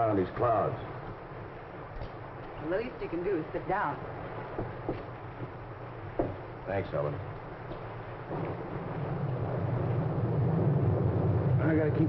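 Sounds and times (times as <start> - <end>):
storm rumbling: 0.0 - 12.0.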